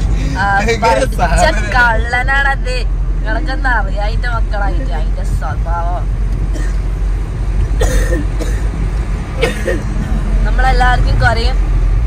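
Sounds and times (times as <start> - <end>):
people talking: 0.0 - 6.0, 9.4 - 11.6
vehicle low rumble: 0.0 - 12.0
cough-like burst: 7.8 - 8.7, 9.4 - 10.2.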